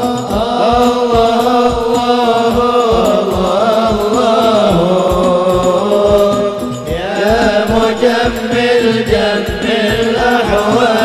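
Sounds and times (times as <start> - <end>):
hand drums steady beat: 0.0 - 11.0
men singing devotional chant: 0.0 - 11.0.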